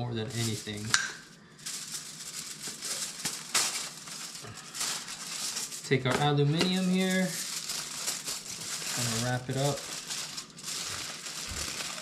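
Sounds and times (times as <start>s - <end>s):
seasoning shaker rattling: 0.3s - 12.0s.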